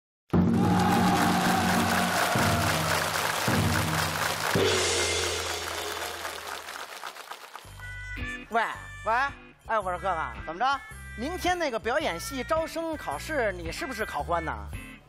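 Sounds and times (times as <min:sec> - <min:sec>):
audience applauding: 0:00.4 - 0:08.0
stage music: 0:00.4 - 0:11.3.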